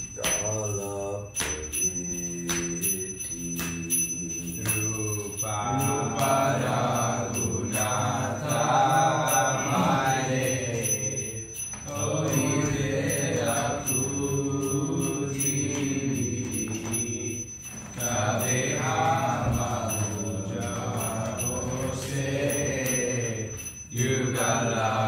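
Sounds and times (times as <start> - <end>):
metallic jingle beat: 0.0 - 25.0.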